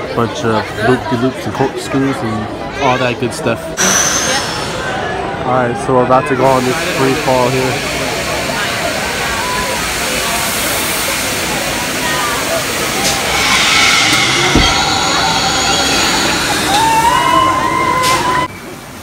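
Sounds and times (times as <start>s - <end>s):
rushing hiss with high whine: 6.6s - 18.5s
long rising cry: 12.6s - 18.6s.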